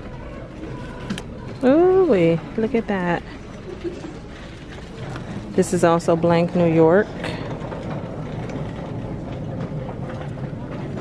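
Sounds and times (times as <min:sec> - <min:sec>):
store hum and murmur: 0:00.0 - 0:11.0.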